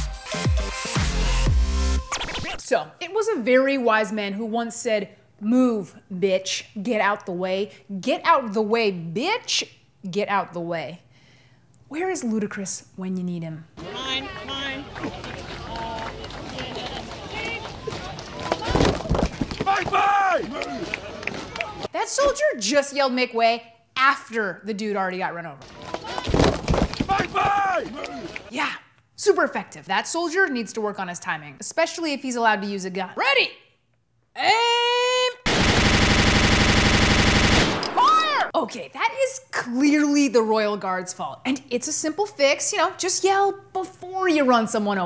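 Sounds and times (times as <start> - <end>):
soldier shouting: 13.8 - 18.8, 19.6 - 21.9, 27.1 - 28.5, 34.4 - 35.5
outdoor crowd noise: 13.8 - 21.9, 25.6 - 28.5
marching boots: 14.9 - 21.5, 25.7 - 28.5
automatic gunfire: 35.5 - 38.2.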